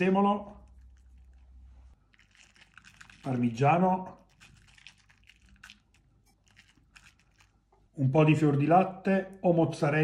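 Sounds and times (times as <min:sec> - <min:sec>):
spoon ticks and scrapes: 0:04.2 - 0:07.6.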